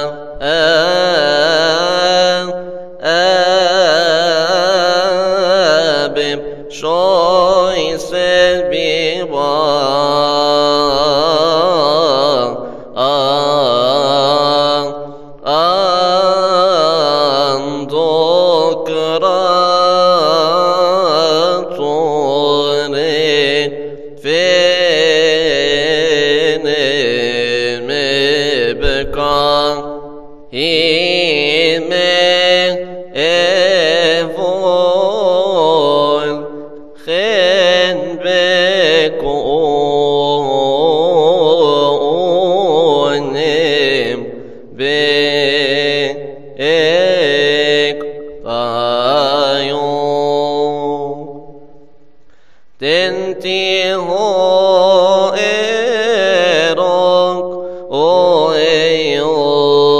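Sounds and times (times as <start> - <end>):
man singing liturgical chant: 0.0 - 51.8, 52.8 - 59.9.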